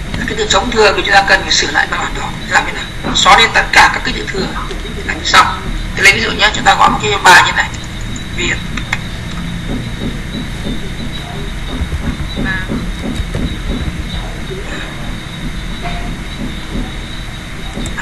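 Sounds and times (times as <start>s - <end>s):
low rumble: 7.8s - 18.0s.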